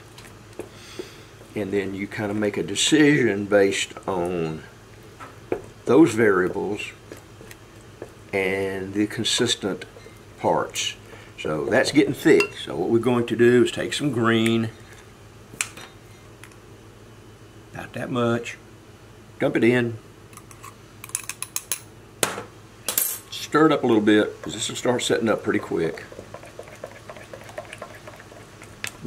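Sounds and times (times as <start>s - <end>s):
utensil stirring wet plaster: 24.4s - 29.0s.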